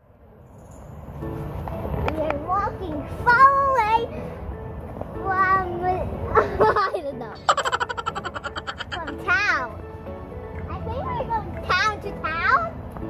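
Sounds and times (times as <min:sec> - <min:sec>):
background music: 0:01.2 - 0:13.0
child giggling: 0:06.3 - 0:09.4.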